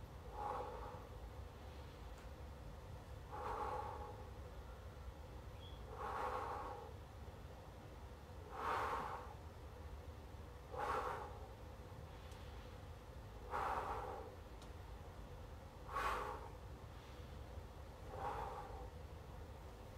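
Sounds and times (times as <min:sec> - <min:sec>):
man breathing hard: 0:00.2 - 0:04.8, 0:05.8 - 0:07.1, 0:08.4 - 0:09.6, 0:10.6 - 0:14.8, 0:15.7 - 0:19.4.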